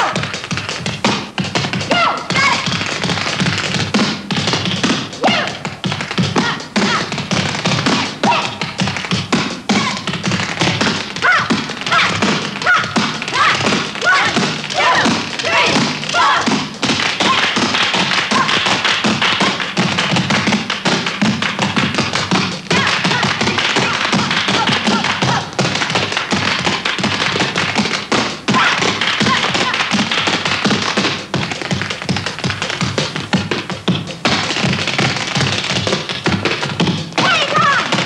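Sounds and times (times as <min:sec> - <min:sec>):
tap shoes on stage floor: 0:00.0 - 0:38.0.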